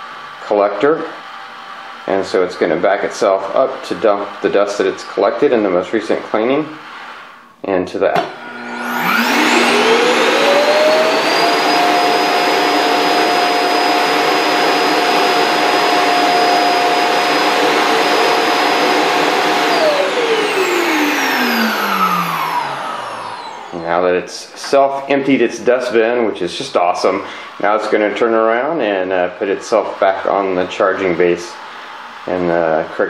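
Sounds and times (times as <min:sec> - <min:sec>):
suction motor whining: 0:08.2 - 0:24.0.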